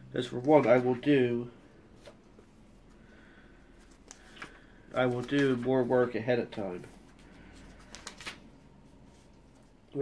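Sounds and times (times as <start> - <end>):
paper sheets rustling: 0.3 - 1.2, 3.8 - 9.8.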